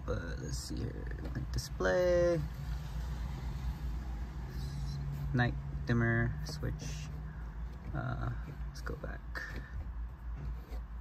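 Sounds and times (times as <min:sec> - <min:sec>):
car engine idling hum: 0:00.0 - 0:11.0.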